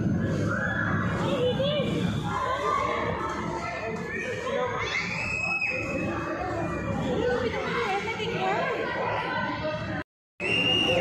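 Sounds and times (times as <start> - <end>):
children chattering: 1.0 - 10.0.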